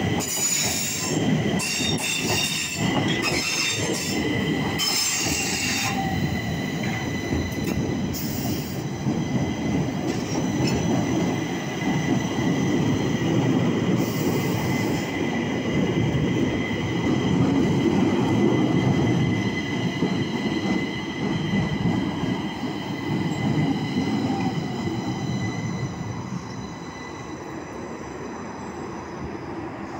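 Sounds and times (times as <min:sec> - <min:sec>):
train wheels rumbling on rail: 0:00.0 - 0:29.9.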